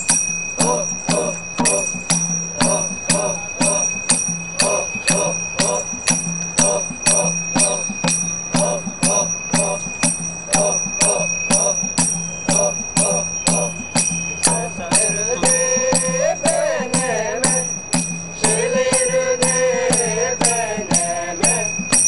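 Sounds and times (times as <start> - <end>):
drum beat: 0.0 - 22.0
ringing metal percussion: 0.0 - 22.0
voices chanting: 0.0 - 22.0.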